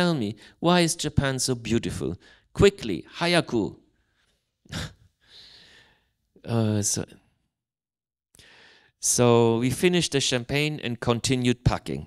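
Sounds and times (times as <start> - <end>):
man speaking: 0.0 - 3.8, 6.4 - 7.2, 9.0 - 12.0
man breathing in: 4.7 - 6.2, 8.4 - 9.0.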